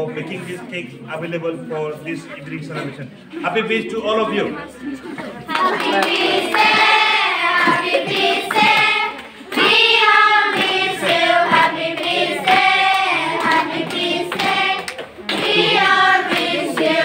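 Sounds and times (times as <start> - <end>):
group singing festive song: 5.2 - 17.0.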